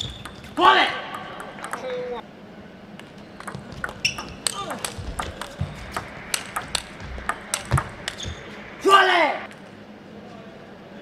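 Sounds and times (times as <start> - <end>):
table tennis ball bouncing: 0.0 - 2.2, 3.0 - 8.6.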